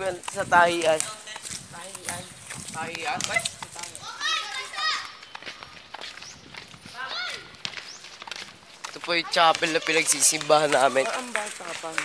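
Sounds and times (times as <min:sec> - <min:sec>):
young people chattering: 0:00.0 - 0:05.9
loud high-pitched shouts: 0:04.0 - 0:05.2, 0:07.0 - 0:07.5.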